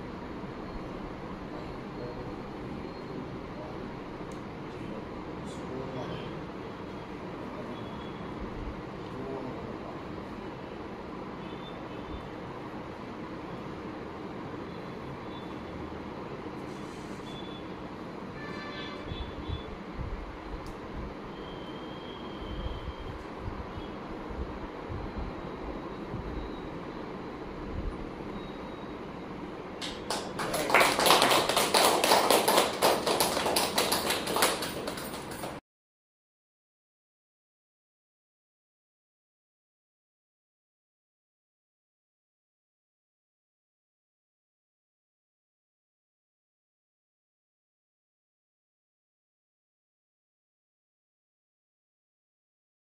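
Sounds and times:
group clapping: 29.8 - 35.6.

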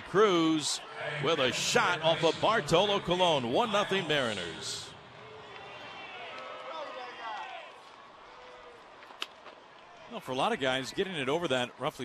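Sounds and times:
faint stadium crowd noise: 0.0 - 12.0.

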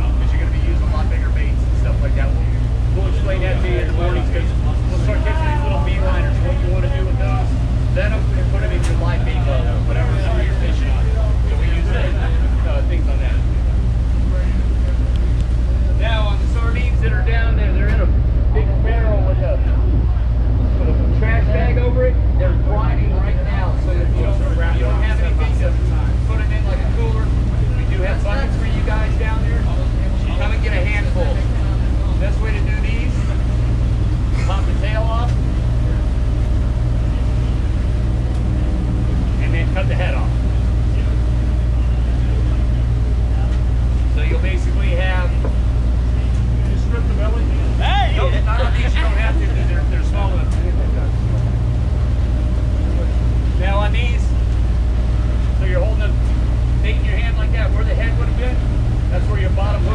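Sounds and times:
boat machinery droning: 0.0 - 59.9.

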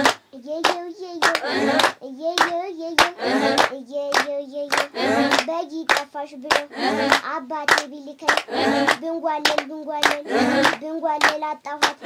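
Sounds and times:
girl singing: 0.0 - 12.0
people clapping in a beat: 0.0 - 12.0.

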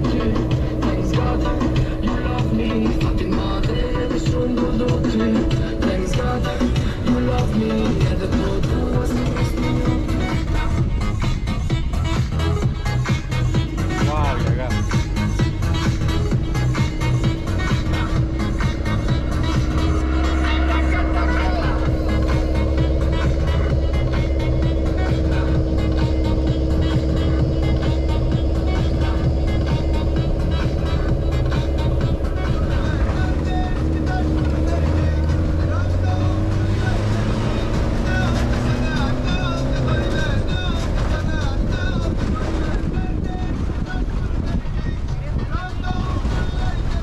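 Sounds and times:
music: 0.0 - 47.0
road rumble: 0.0 - 47.0
vehicle engine running: 0.0 - 47.0.

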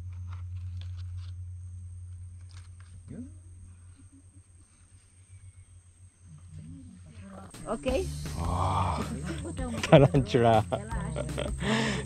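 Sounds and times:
steady low hum: 0.0 - 12.0
low voices murmuring: 6.2 - 12.0.

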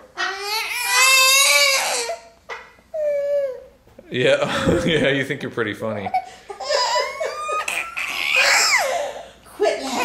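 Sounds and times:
baby squealing: 0.1 - 3.7, 6.6 - 9.2.

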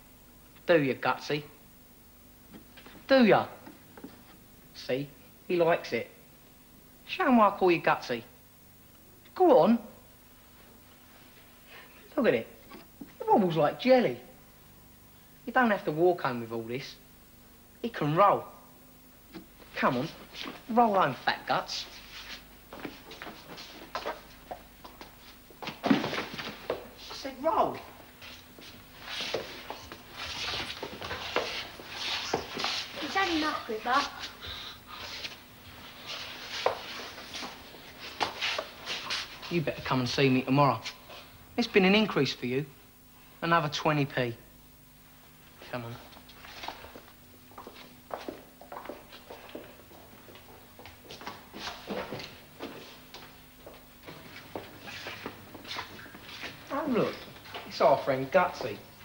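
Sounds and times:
clothes scuffing on floor: 19.4 - 20.8, 21.8 - 39.6, 45.1 - 59.0
boy's voice: 33.0 - 34.4.

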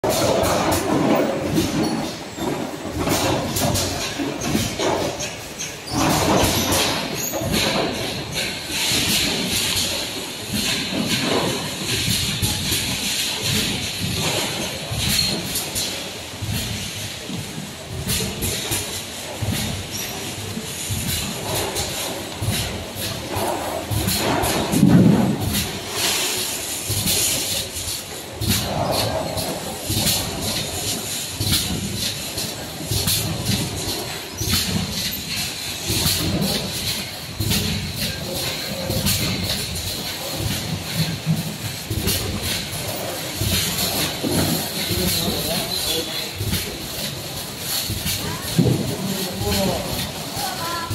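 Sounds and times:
bottling machine clatter: 0.0 - 50.9.

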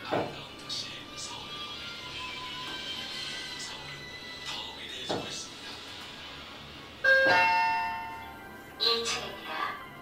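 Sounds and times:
elevator two-note chime: 7.0 - 9.1.

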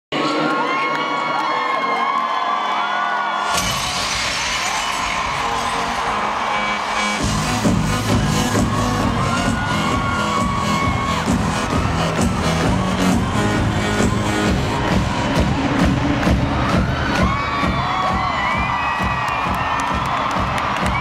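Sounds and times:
crowd screaming and cheering: 0.1 - 21.0
loud concert music: 0.1 - 21.0
loud crash: 3.5 - 7.2
heavy bass beat: 3.6 - 21.0.

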